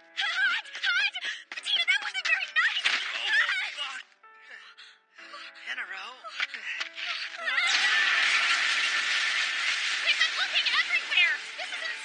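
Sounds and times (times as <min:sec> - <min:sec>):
hissing explosion blast: 0:07.8 - 0:10.1.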